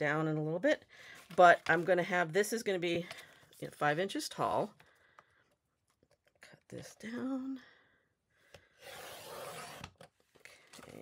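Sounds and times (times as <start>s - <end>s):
paper trimmer blade scraping: 8.8s - 9.9s.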